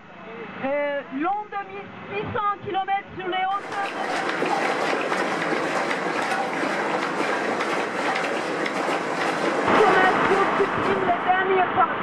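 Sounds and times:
crowd murmur: 3.5s - 11.3s.

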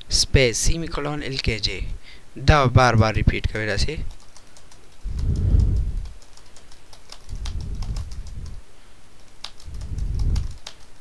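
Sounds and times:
keyboard keys tapping: 4.0s - 8.6s, 9.2s - 11.0s
low rumbling: 7.4s - 8.6s.

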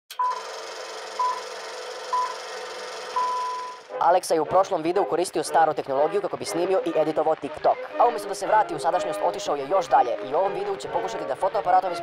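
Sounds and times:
high countdown beeps: 1.2s - 3.8s.

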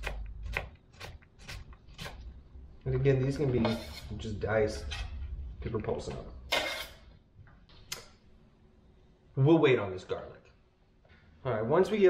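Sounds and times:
bench scraper scraping: 3.4s - 4.3s, 6.5s - 7.0s.

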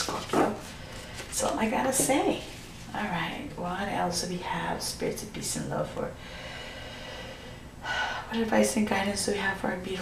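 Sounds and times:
woman speaking: 0.0s - 0.7s, 1.3s - 6.2s, 8.2s - 10.0s
soft breathing: 6.2s - 8.4s.

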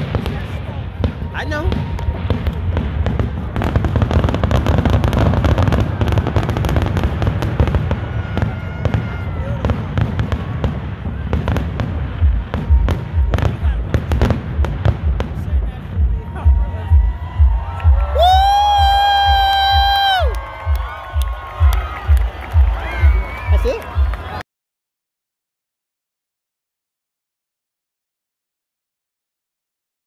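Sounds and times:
heavy low firework booms: 0.0s - 19.9s
fireworks bangs and crackling: 0.0s - 24.4s.

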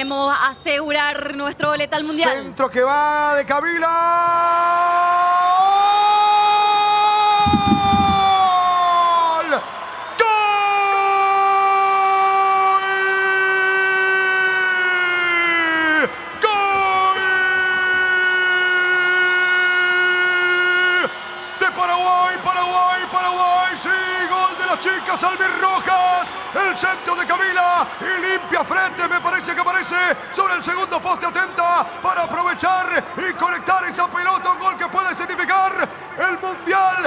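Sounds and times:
excited shouting: 4.8s - 9.6s.

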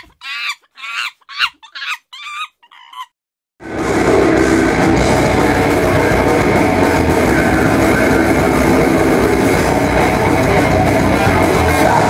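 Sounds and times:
heavy metal band playing: 3.6s - 12.0s.

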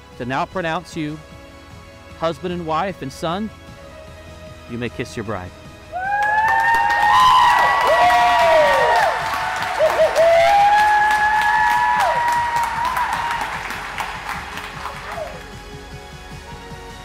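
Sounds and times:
long held whoops: 5.9s - 13.7s
rising and falling shouts: 5.9s - 13.7s
crowd clapping: 6.0s - 15.6s.

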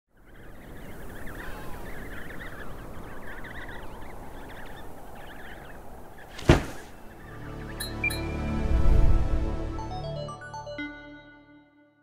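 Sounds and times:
wind blowing: 0.1s - 7.6s
many birds calling: 0.1s - 8.3s.

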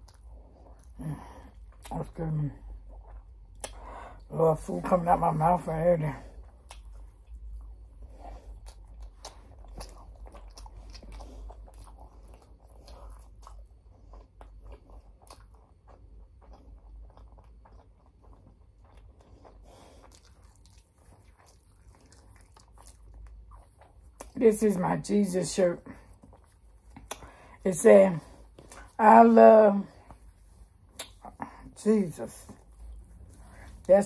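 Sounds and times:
person chewing food: 0.0s - 2.0s, 2.6s - 4.3s, 6.3s - 24.4s, 25.8s - 27.6s, 28.2s - 29.0s, 29.9s - 31.8s, 32.4s - 33.9s
wet mouth clicks and crunches: 3.0s - 3.8s, 6.5s - 7.7s, 8.6s - 24.4s, 26.2s - 27.4s, 30.9s - 31.4s.

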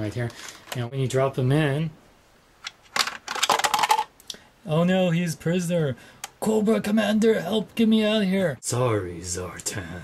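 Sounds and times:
plastic toy figure clattering: 2.6s - 4.1s.

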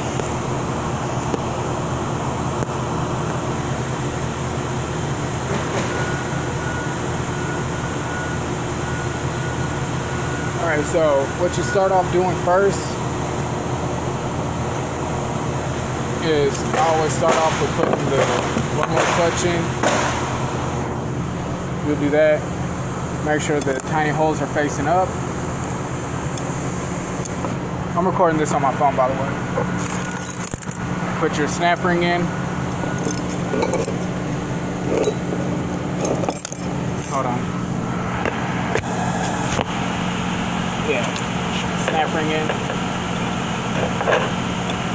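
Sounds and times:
steady low hum: 0.0s - 44.9s
mechanical hum and rushing: 23.0s - 44.9s.

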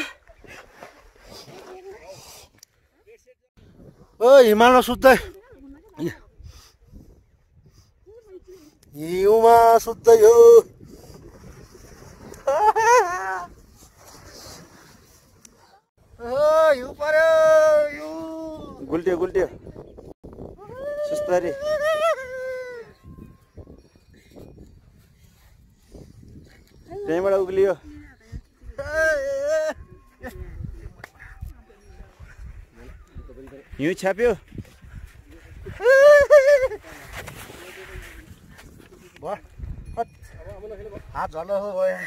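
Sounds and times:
person yelling playfully: 20.6s - 22.9s, 35.8s - 36.8s
snow rushing scrape: 36.7s - 38.4s.

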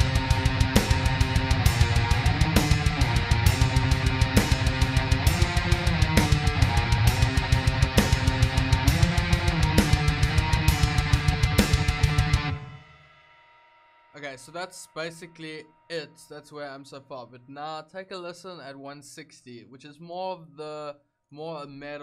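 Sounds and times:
distorted electric guitars: 0.0s - 13.6s.

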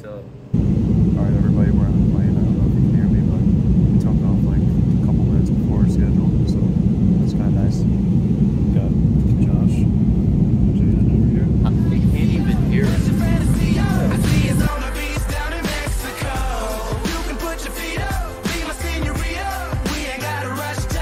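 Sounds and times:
airliner cabin rumble: 0.6s - 15.5s
faint voices: 1.2s - 8.0s, 10.7s - 14.7s.

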